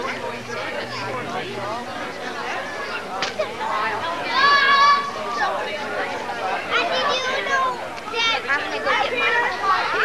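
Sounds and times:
children and adults chattering: 0:00.0 - 0:10.0.

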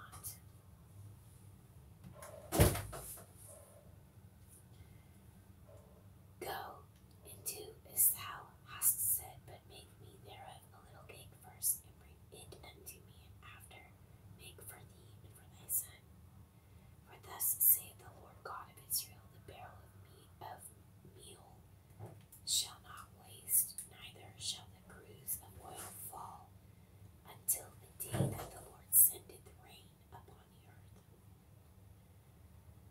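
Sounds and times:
person whispering: 0:00.0 - 0:00.4, 0:06.4 - 0:16.0, 0:17.1 - 0:21.6, 0:22.5 - 0:26.5, 0:27.3 - 0:31.0
faint low hum: 0:00.0 - 0:32.9.

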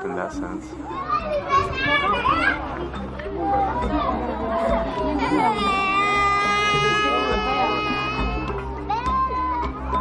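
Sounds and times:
crowd talking: 0:00.0 - 0:10.0
small child crying: 0:05.3 - 0:09.8.

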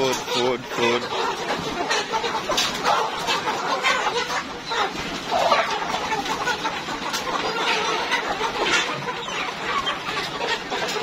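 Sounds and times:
chickens clucking: 0:00.0 - 0:11.0.

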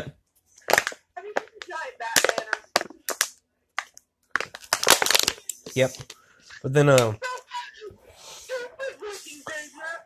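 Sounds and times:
indistinct talking: 0:05.7 - 0:10.0.

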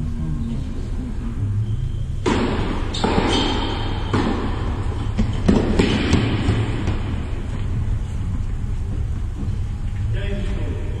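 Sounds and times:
low rumble of indoor hall: 0:00.0 - 0:11.0
tennis balls knocking: 0:02.2 - 0:09.5.

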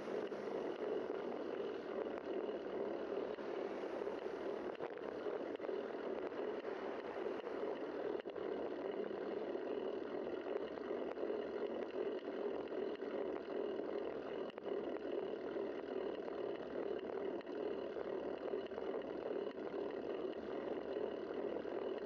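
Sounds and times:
wind and road noise from bicycle: 0:00.0 - 0:22.0.

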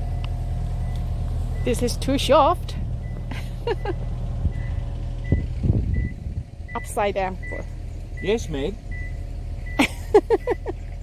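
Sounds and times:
heavy vehicle engine rumbling: 0:00.0 - 0:11.0
reversing alarm beeps: 0:04.5 - 0:09.8.

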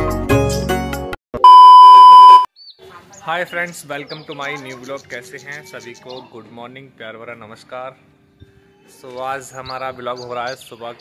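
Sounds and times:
electronic beep: 0:01.4 - 0:02.5.

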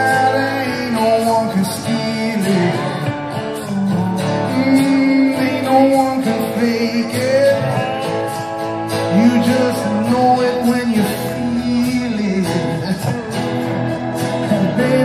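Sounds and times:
live rock band playing: 0:00.0 - 0:15.0
man singing: 0:00.0 - 0:15.0.

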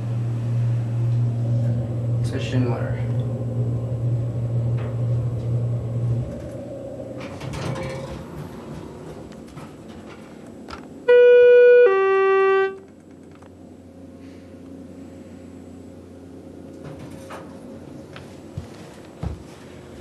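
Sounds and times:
elevator running hum: 0:00.0 - 0:20.0.

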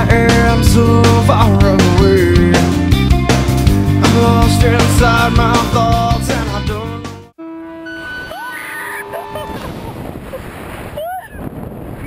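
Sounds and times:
rock music: 0:00.0 - 0:07.4
steady held tones: 0:07.4 - 0:10.0
short rising cry: 0:07.4 - 0:10.1
wind rushing on microphone: 0:09.0 - 0:12.0.

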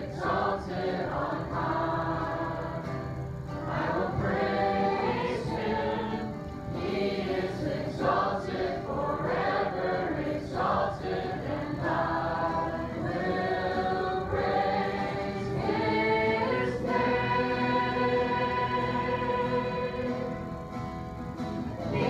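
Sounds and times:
acoustic guitar: 0:00.0 - 0:22.0
congregation singing: 0:00.0 - 0:22.0.

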